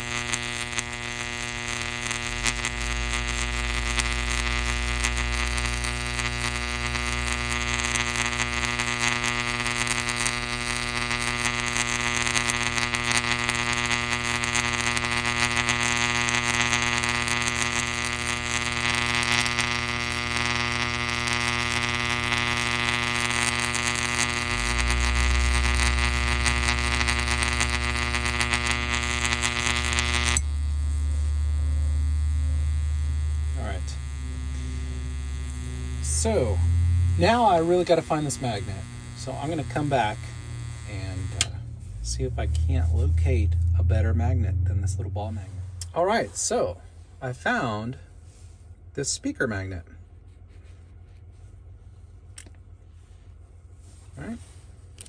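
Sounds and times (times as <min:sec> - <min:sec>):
crackly electrical buzz: 0:00.0 - 0:51.6, 0:52.2 - 0:55.0
mains hum: 0:00.0 - 0:55.0.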